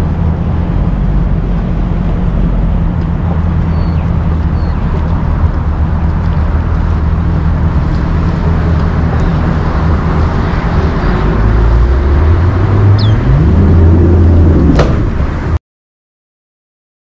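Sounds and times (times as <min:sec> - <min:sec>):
outboard motor droning: 0:00.0 - 0:15.5
short high chirp: 0:13.0 - 0:13.2.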